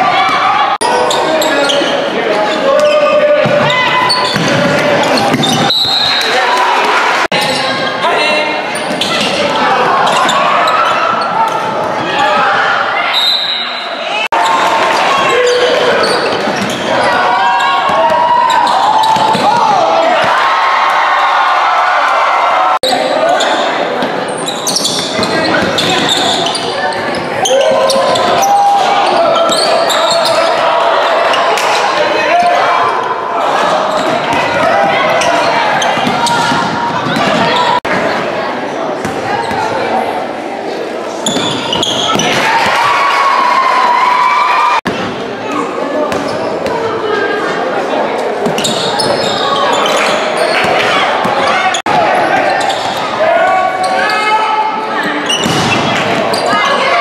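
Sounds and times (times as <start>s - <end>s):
spectators calling and shouting: 0.0s - 57.0s.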